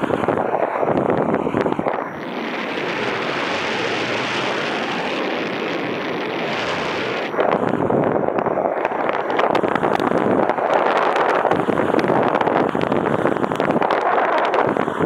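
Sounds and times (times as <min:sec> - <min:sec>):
wind buffeting microphone crackle: 0:00.0 - 0:15.0
wind rushing over microphone: 0:00.0 - 0:15.0.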